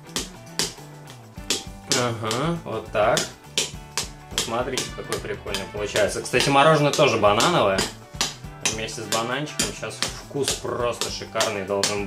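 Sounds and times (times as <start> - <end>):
background music: 0.0 - 12.0.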